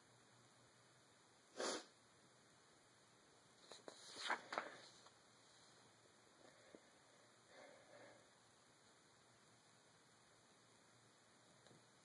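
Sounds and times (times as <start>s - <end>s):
person sniffing: 1.5s - 2.0s.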